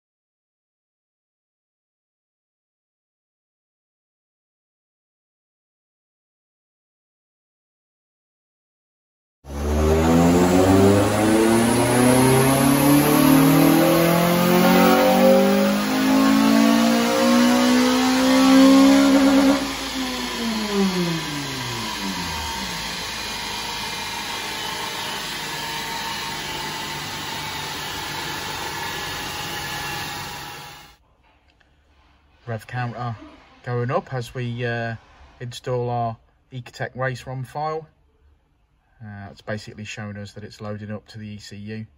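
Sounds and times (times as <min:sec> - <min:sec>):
car engine revving at full throttle: 0:09.5 - 0:30.9
steady engine running noise: 0:09.5 - 0:31.0.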